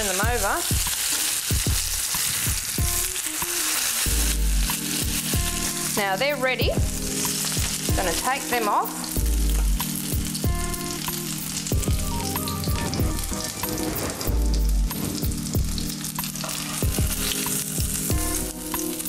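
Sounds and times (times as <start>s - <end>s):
background music: 0.0s - 19.0s
fish sizzling in hot oil: 0.0s - 19.0s.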